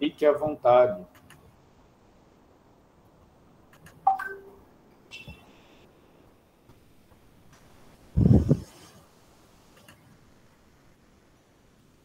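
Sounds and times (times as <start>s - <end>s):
short electronic beeps: 4.1s - 5.8s.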